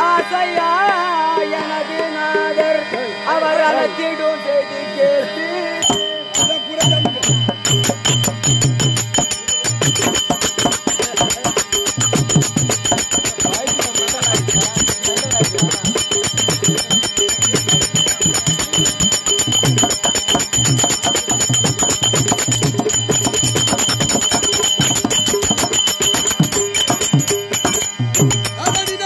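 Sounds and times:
fast metallic strikes ringing: 0:05.3 - 0:29.0.

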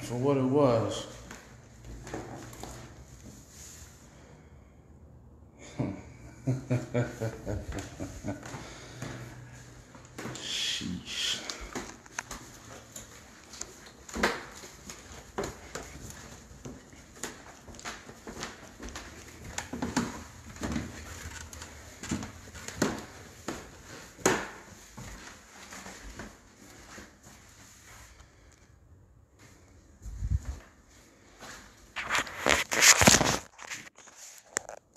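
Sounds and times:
footsteps on wooden floor and stairs: 0:01.1 - 0:03.5, 0:11.6 - 0:27.6.

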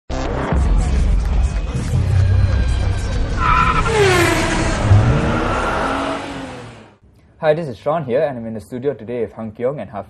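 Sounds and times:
race car engine rumble: 0:02.1 - 0:07.0
tyre squeal: 0:03.4 - 0:06.5.

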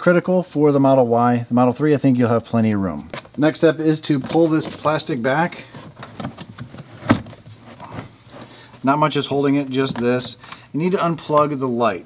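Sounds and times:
plastic panel rubbing: 0:05.7 - 0:08.6.

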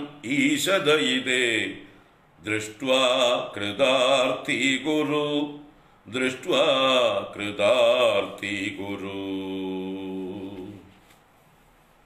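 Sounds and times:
man chanting: 0:00.0 - 0:11.0.

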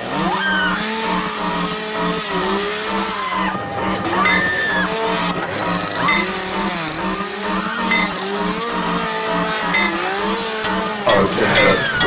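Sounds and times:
gliding synth lines: 0:02.4 - 0:12.0
hi-hats: 0:10.6 - 0:12.0.

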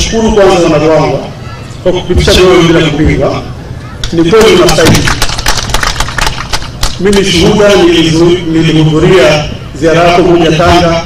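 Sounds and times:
audience clapping: 0:04.4 - 0:07.2.

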